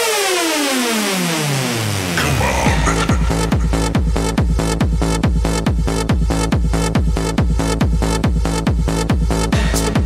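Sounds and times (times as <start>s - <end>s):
electronic dance music: 2.2s - 6.4s, 9.4s - 10.0s.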